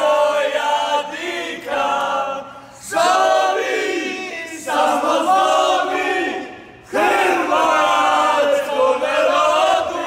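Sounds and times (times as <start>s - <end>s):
football fans chanting: 0.0s - 10.0s.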